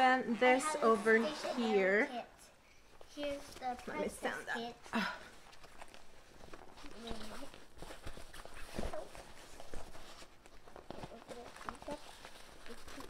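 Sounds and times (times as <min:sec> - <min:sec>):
fabric backpack rustling: 0:03.2 - 0:13.0.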